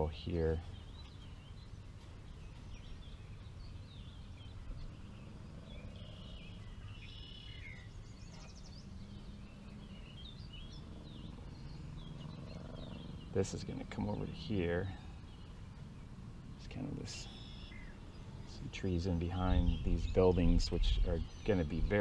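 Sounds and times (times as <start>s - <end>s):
small birds chirping: 0.0s - 22.0s
steady low rumble: 0.0s - 22.0s.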